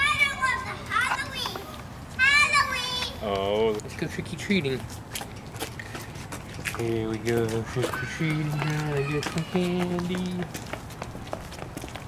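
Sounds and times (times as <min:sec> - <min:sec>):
toddler squealing and babbling: 0:07.9 - 0:09.7.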